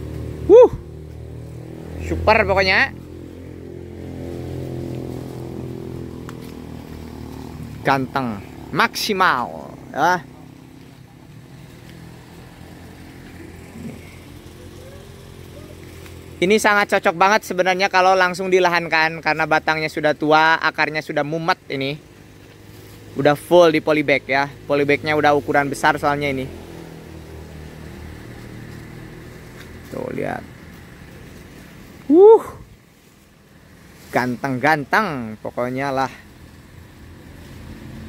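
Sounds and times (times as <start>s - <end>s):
vehicle engine idling: 0.0s - 38.0s.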